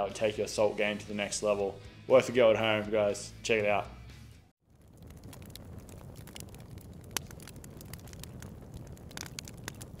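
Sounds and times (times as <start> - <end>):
crackling fire: 4.5 - 10.0.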